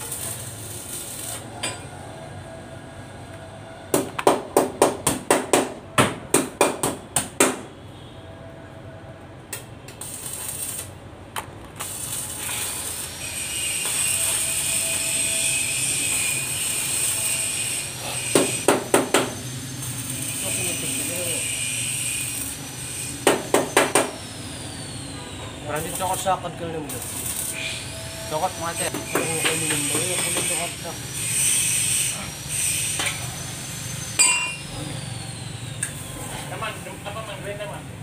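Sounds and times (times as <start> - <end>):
welding arc crackling: 0.0 - 1.7, 9.5 - 25.0, 25.6 - 34.7
sharp metal strikes: 34.2 - 34.7.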